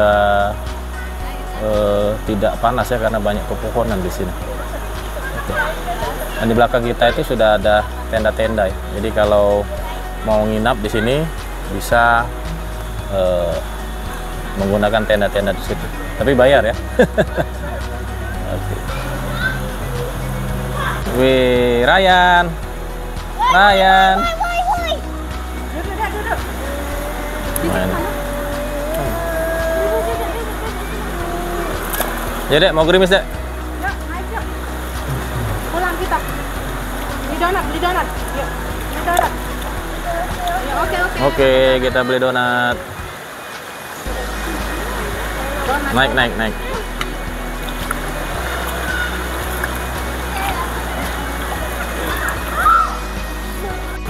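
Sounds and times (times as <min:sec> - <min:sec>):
background music: 0:00.0 - 0:54.0
faint voices: 0:00.0 - 0:54.0
river running over stones: 0:00.0 - 0:54.0.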